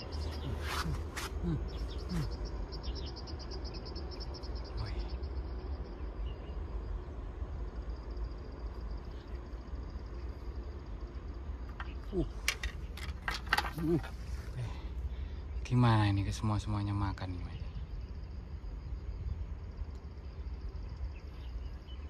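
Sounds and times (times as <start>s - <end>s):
insect trill: 0.0s - 22.0s.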